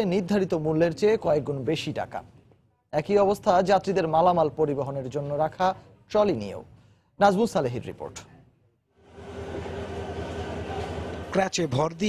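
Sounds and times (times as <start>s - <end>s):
standing train low hum: 9.0s - 11.4s.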